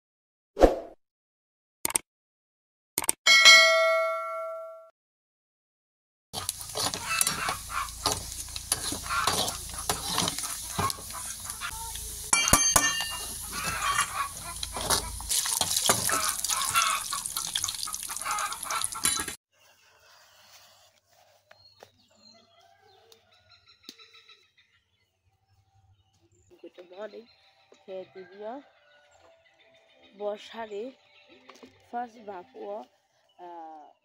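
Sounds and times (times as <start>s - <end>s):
sharp metal clinks: 3.3s - 4.8s, 12.3s - 13.4s
bell-like ding: 3.3s - 4.9s
metal spoon scraping pan: 6.4s - 17.6s
food deep-frying in hot oil: 6.4s - 19.4s.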